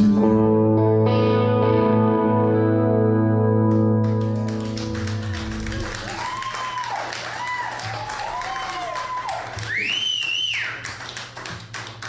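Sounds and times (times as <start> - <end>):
electric guitar notes bending: 0.0 - 6.2.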